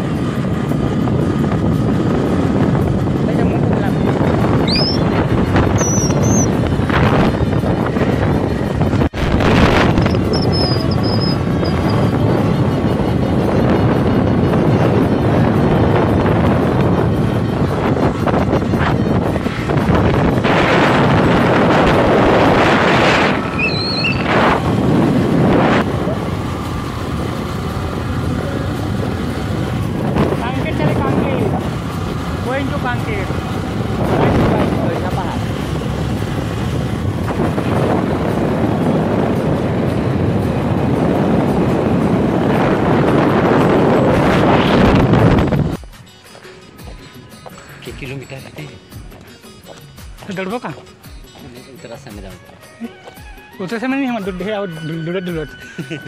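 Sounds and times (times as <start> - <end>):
wind rushing over microphone: 0.0 - 46.0
motorcycle engine running: 0.0 - 53.5.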